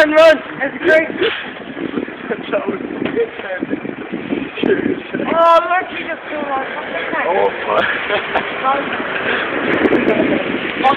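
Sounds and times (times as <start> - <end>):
people talking: 2.2 - 3.8, 4.6 - 10.9
people laughing: 7.4 - 9.4.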